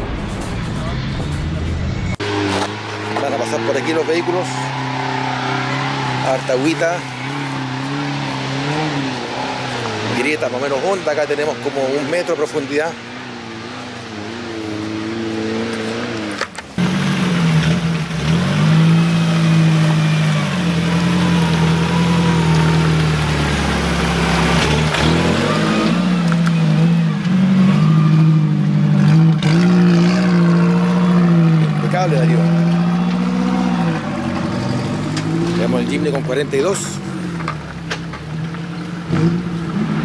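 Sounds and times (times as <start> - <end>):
car engine under load: 0.0 - 40.0.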